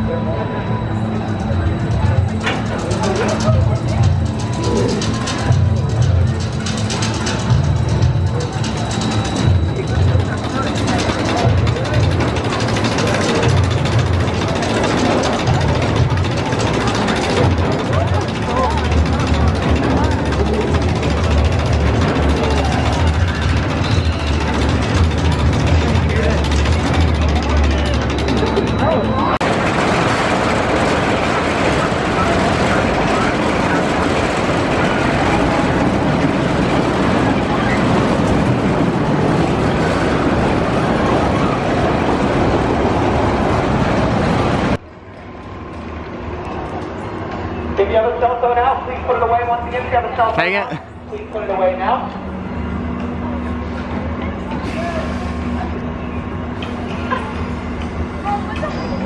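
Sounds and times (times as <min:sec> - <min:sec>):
low hum: 0:00.0 - 0:47.8
roller coaster wheels on steel rail: 0:00.0 - 0:59.0.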